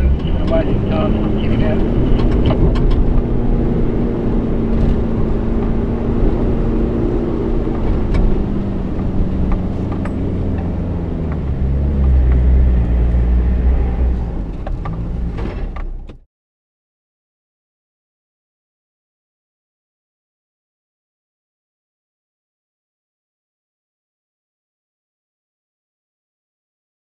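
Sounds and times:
off-road vehicle engine pulling: 0:00.0 - 0:16.2.

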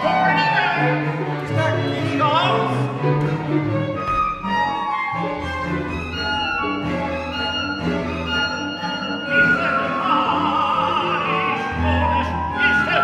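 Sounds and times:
bowed strings ensemble: 0:00.0 - 0:13.0.

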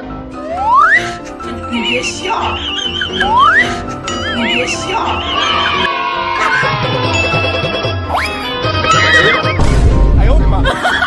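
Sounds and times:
background music: 0:00.0 - 0:11.0
horse whinny: 0:05.3 - 0:07.3, 0:08.3 - 0:09.6.

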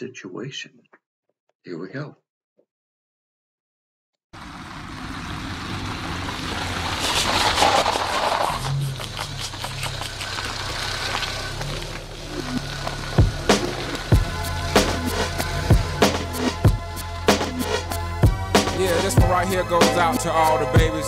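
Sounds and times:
car driving on dirt road: 0:04.4 - 0:17.8
music: 0:13.2 - 0:21.0.

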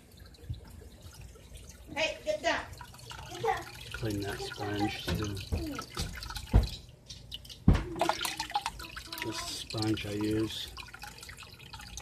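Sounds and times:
water dripping and splashing: 0:00.0 - 0:12.0.

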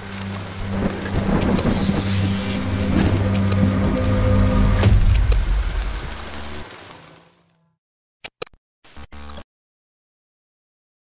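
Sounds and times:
low music drone: 0:00.0 - 0:06.7
rain-like noise: 0:00.0 - 0:07.6.

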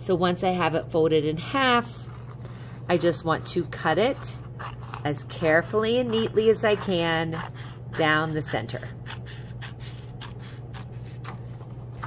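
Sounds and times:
steady low hum: 0:00.0 - 0:12.0
scissors snipping paper: 0:03.4 - 0:12.0.

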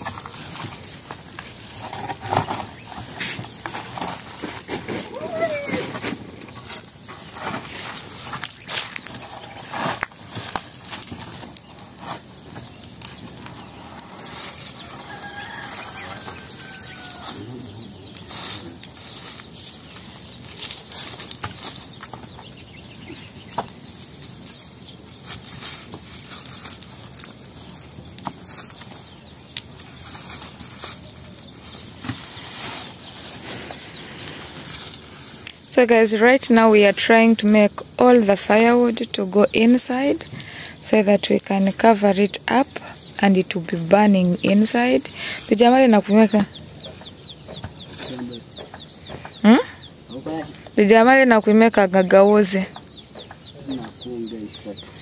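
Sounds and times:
firewood knocking and rustling: 0:00.0 - 0:55.0
wood fire crackling: 0:00.0 - 0:55.0.

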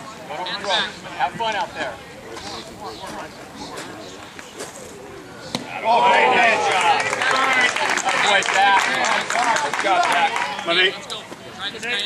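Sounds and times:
spectators shouting and cheering: 0:05.7 - 0:11.0.

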